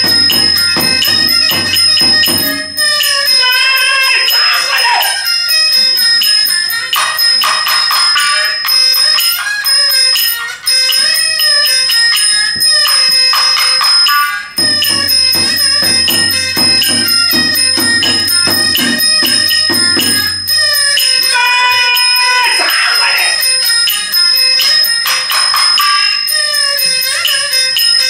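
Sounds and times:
quick percussion strokes: 0.0 - 3.3, 14.6 - 21.2
ringing bell-like metal percussion: 0.0 - 28.0.

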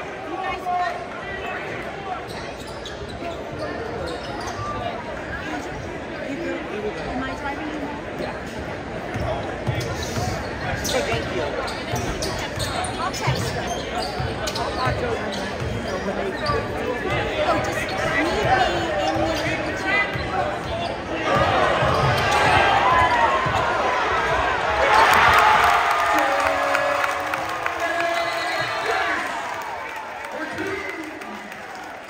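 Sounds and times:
crowd chatter: 0.0 - 32.0.

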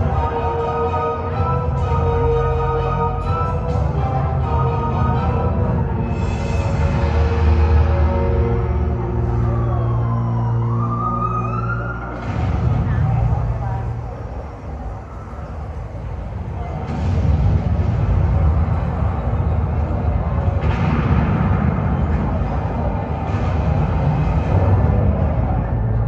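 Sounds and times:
heavy low rumbling effects: 0.0 - 26.0
low music drone with rising glide: 0.0 - 26.0.

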